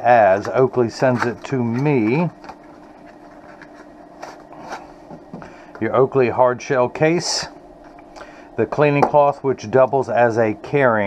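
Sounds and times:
faint steady hum: 0.0s - 11.0s
packaging scraping and rustling: 0.3s - 5.1s.

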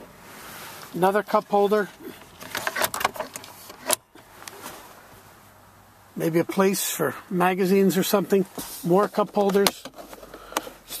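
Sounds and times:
faint steady hiss: 0.0s - 2.5s.

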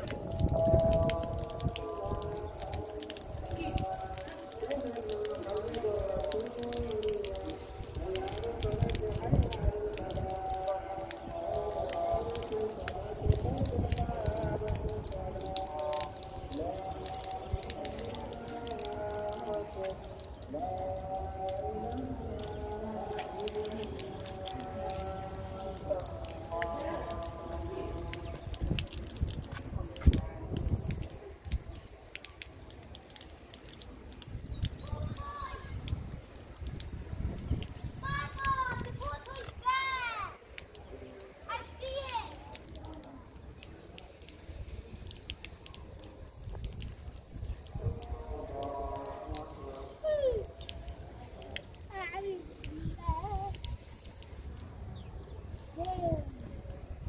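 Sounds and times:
rainwater dripping off metal roof: 0.0s - 57.0s
distant voices calling out: 37.5s - 46.0s.

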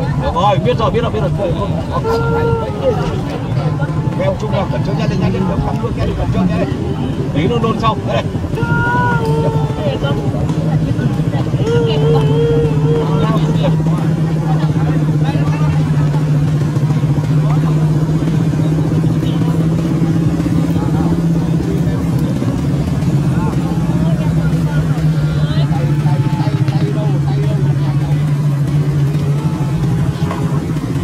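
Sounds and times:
engine idling: 0.0s - 31.0s
people's voices: 0.0s - 31.0s
person crying out: 2.0s - 3.2s, 8.6s - 10.4s, 11.6s - 13.3s.

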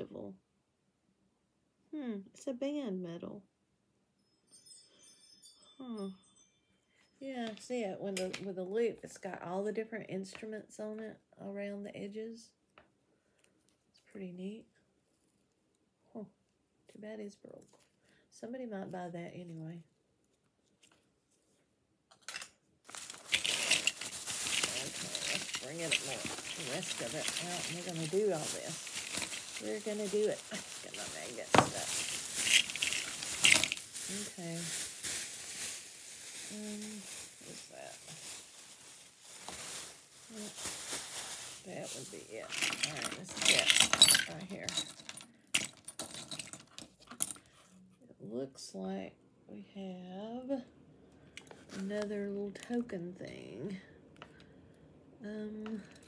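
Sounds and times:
metal pins clinking and scraping: 22.2s - 33.9s, 42.4s - 47.5s
plastic bags crinkling: 22.8s - 47.4s.

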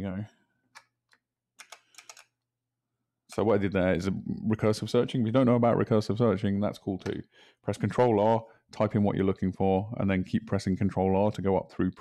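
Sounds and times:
faint keyboard keystrokes: 0.7s - 2.3s.

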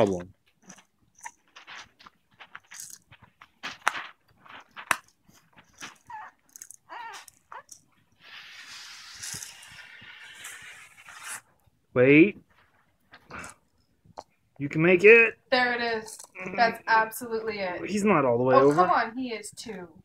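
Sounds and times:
baby vocal sounds: 6.0s - 7.7s.

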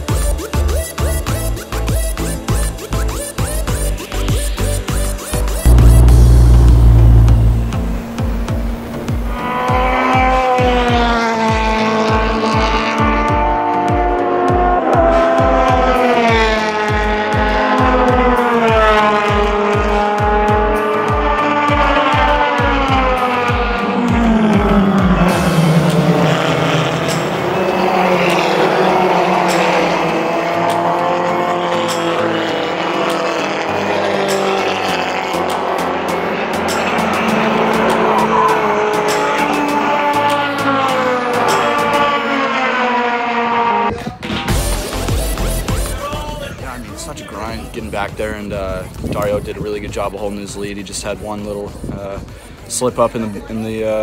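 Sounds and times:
background music with steady beat: 0.0s - 9.6s, 10.4s - 43.1s, 44.2s - 53.2s
race car engines revving: 5.6s - 44.0s.

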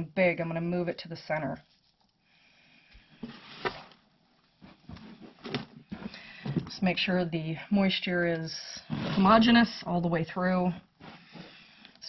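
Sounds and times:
hands rustling compost: 1.6s - 2.2s.

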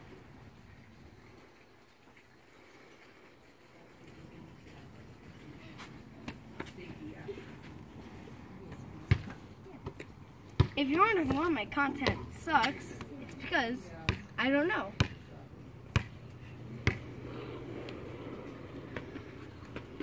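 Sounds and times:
wheels rolling over concrete: 0.0s - 10.6s, 15.2s - 20.0s.

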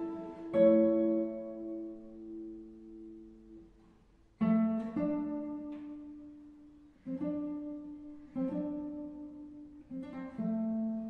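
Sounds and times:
classical guitar plucking: 0.0s - 11.0s.

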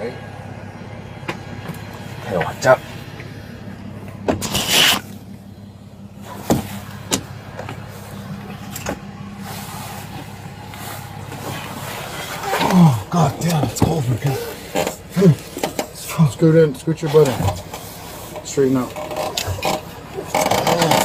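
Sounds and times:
vehicle idling hum: 0.0s - 21.0s
rustling scrape: 4.4s - 5.2s, 9.4s - 12.7s, 17.1s - 18.4s.

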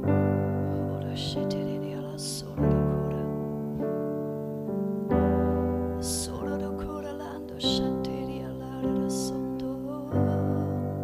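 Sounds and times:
digital piano sustained chords: 0.0s - 11.0s.

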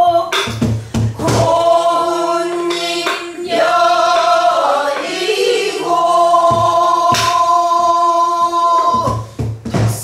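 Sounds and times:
voices singing folk song: 0.0s - 10.0s
barrel drum struck with stick: 0.2s - 5.2s, 5.8s - 7.6s.

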